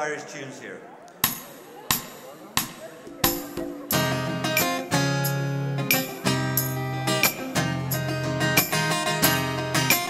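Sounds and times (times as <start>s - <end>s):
sharp percussive hits: 1.2s - 3.9s.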